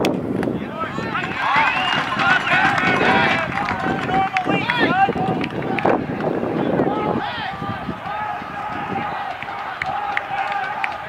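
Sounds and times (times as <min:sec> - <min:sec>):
people shouting: 0:00.7 - 0:06.0, 0:06.8 - 0:11.0.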